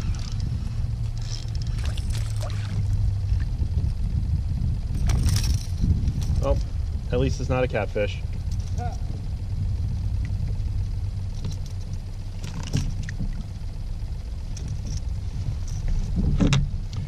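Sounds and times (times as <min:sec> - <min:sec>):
steady low rumble: 0:00.0 - 0:17.0
knocks and rustles: 0:11.3 - 0:13.7, 0:14.5 - 0:17.0.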